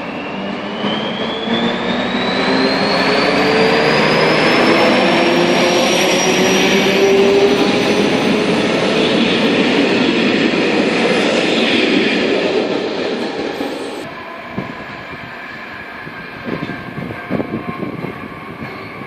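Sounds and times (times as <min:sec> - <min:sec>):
train rumble: 0:00.0 - 0:19.0
train rushing past: 0:00.0 - 0:19.0.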